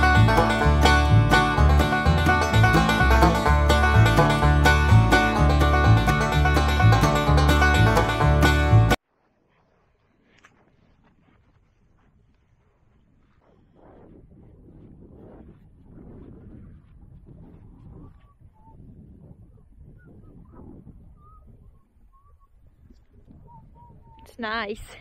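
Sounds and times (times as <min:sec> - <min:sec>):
wind buffeting microphone: 0:10.9 - 0:25.0.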